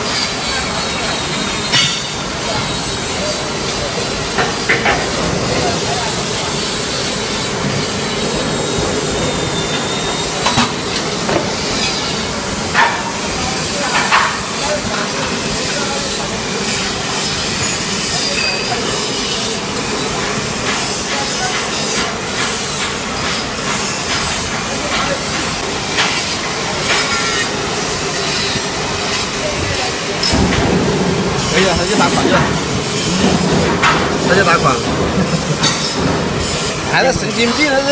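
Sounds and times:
sharp knocks: 11.3 - 11.7
die-cutting machine running: 26.7 - 37.9.

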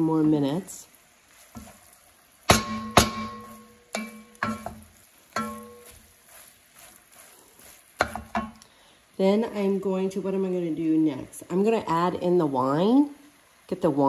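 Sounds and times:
wooden spoon stirring thick sauce: 1.0 - 8.6
spoon knocking against pot: 2.5 - 6.0, 8.0 - 8.6.

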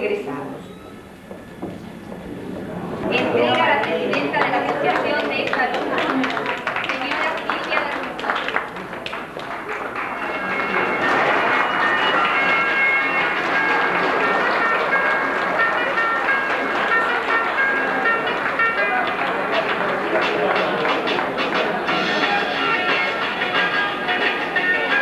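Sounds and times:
audience applause: 2.7 - 23.2
music playing: 9.2 - 25.0.

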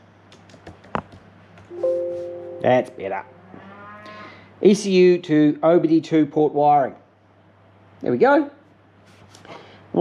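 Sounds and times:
two-tone electronic chime: 1.7 - 3.1.

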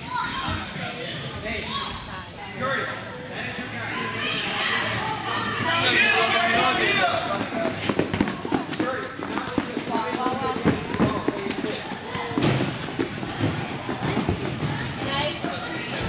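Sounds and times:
running footsteps on turf: 6.7 - 15.6.

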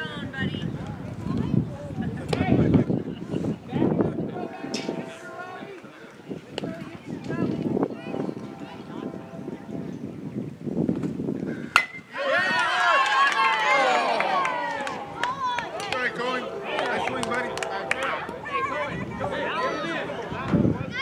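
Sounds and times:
crowd shouting and cheering: 3.8 - 9.4, 11.8 - 21.0
bat hitting baseball: 11.7 - 12.1.

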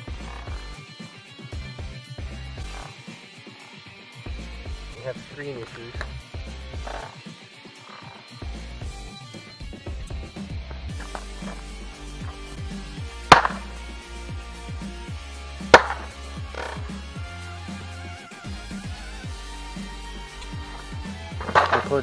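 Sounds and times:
background music with beat: 0.0 - 22.0.

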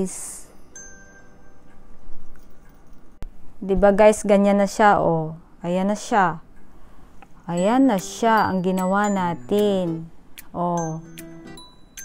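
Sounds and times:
small bells ringing: 0.6 - 3.2, 10.8 - 12.0.

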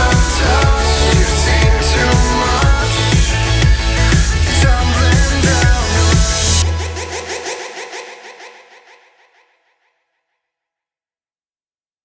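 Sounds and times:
electronic dance track synth pattern: 0.0 - 7.9.

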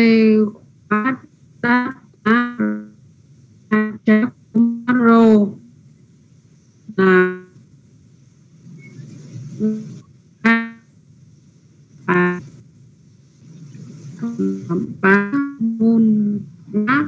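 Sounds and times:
faint steady hiss: 0.0 - 17.0
single musical notes: 12.0 - 12.5, 14.2 - 17.0.

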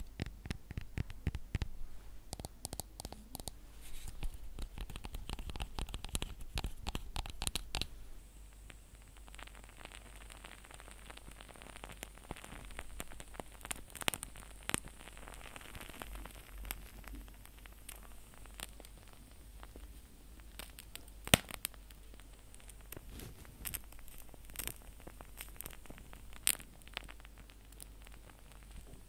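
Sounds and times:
object crackling and clicking: 0.0 - 7.9, 8.6 - 29.0
crackly rustling: 0.0 - 29.0.

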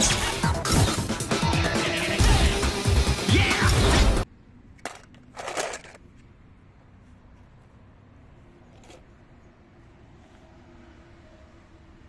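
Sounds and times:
film soundtrack music: 0.0 - 4.2.

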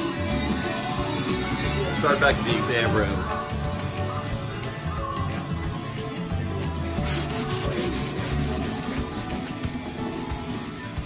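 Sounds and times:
background music with low notes: 0.0 - 11.0
rubbing scraping against surface: 7.0 - 11.0.

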